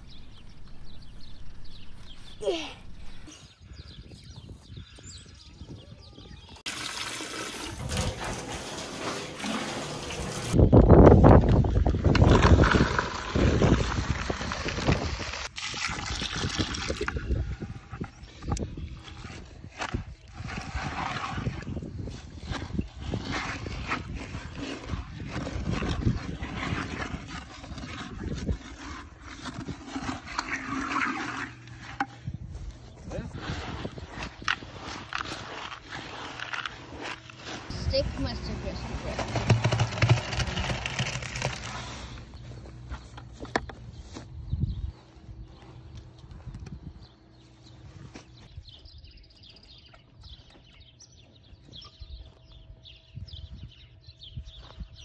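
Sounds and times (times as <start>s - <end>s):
tap water running into jug: 6.7s - 10.6s.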